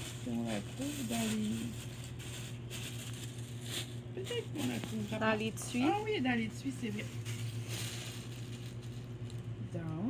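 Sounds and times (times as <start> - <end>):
packaging rustling: 0.0 - 9.6
steady low hum: 0.0 - 10.0.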